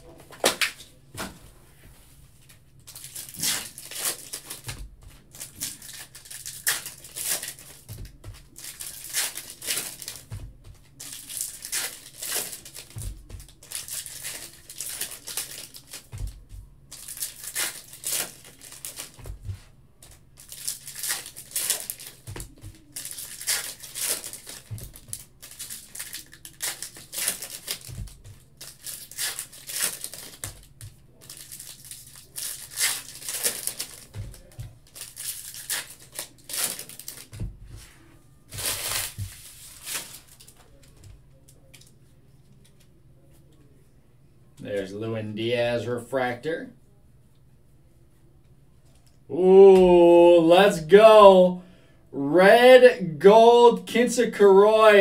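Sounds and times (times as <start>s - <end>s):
foil wrappers crinkling and tearing: 2.9s - 19.3s, 20.0s - 37.4s, 38.5s - 40.8s.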